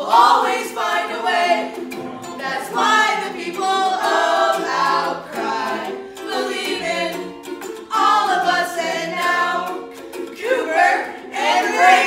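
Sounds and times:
group of voices singing: 0.0s - 12.0s
strummed ukulele: 0.0s - 12.0s.

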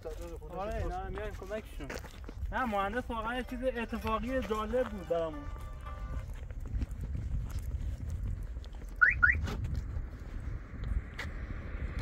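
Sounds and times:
wind rumble on microphone: 0.0s - 4.7s, 5.4s - 12.0s
car alarm rising chirps: 9.0s - 9.4s.

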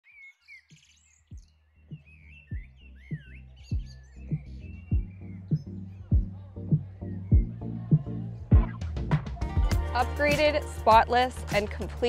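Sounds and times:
birds chirping: 0.0s - 8.8s
background music with drum beat: 1.3s - 12.0s.

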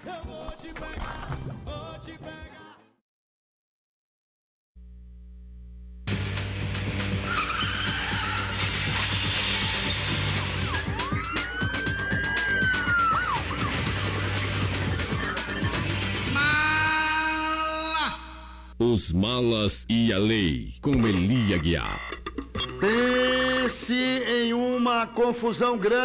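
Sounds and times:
low hum: 4.8s - 6.2s
theme music: 6.1s - 16.8s
siren wail: 7.3s - 13.8s.

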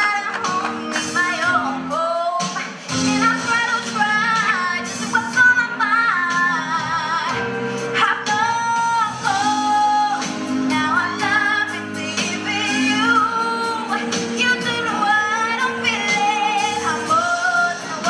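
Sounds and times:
girl singing a slow ballad: 0.0s - 18.0s
instrumental accompaniment: 0.0s - 18.0s.

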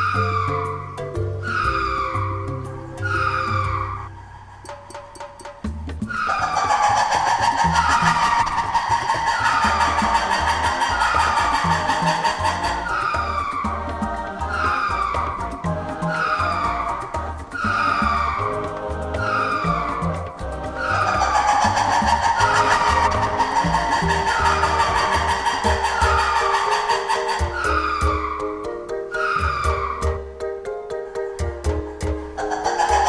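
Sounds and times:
background music with low beat: 0.0s - 33.0s
lemur squealing calls: 0.0s - 33.0s.

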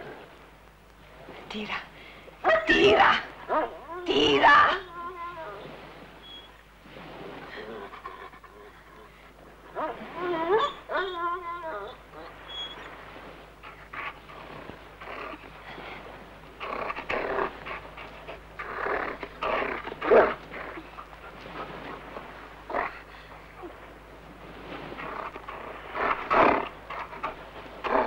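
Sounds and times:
dog whining: 9.8s - 12.9s.

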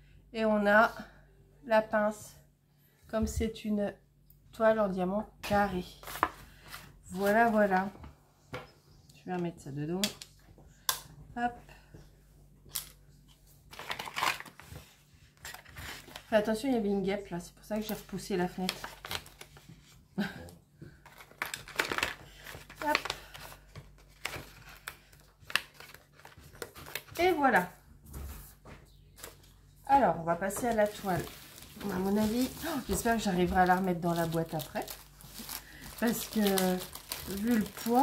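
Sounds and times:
paper pouch crinkling: 13.7s - 14.6s, 30.8s - 38.0s.

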